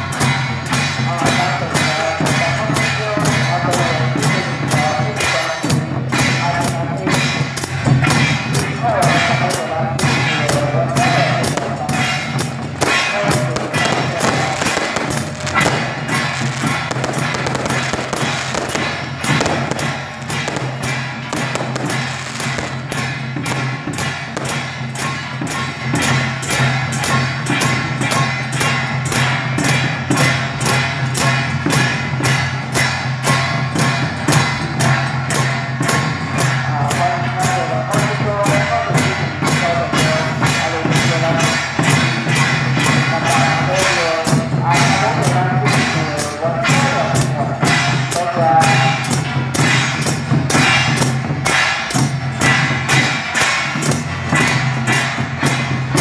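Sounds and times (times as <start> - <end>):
drums and cymbals beating: 0.0 - 56.0.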